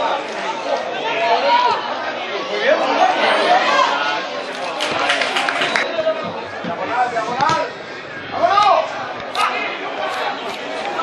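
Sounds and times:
overlapping voices chattering: 0.0 - 11.0.

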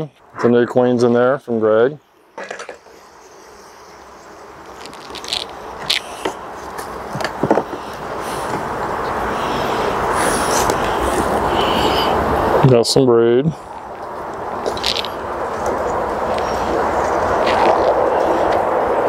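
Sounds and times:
steady rushing noise: 0.2 - 19.0.

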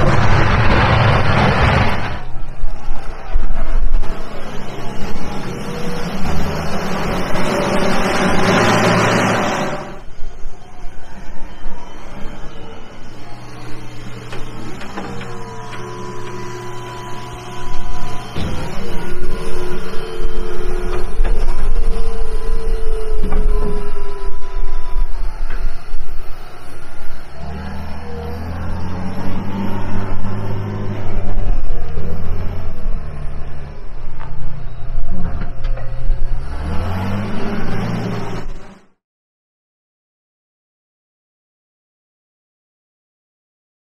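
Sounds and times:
diesel engine revving: 0.0 - 10.2, 12.1 - 39.0
high whining tones: 0.0 - 38.9.

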